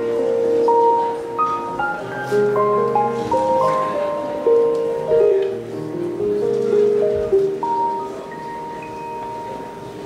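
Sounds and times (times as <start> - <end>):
piano notes ringing: 0.0 - 10.0.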